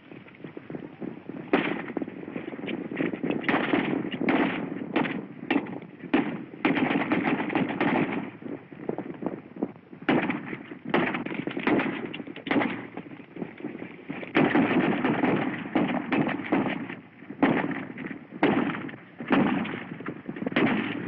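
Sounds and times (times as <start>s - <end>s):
galloping horses: 0.0s - 21.0s
gunshots: 1.5s - 2.1s, 2.9s - 8.4s, 10.1s - 13.0s, 14.1s - 21.0s.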